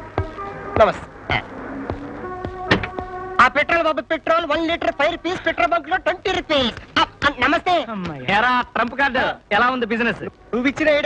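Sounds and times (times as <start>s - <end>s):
sustained background music tones: 0.0s - 11.0s
person speaking: 3.4s - 10.9s.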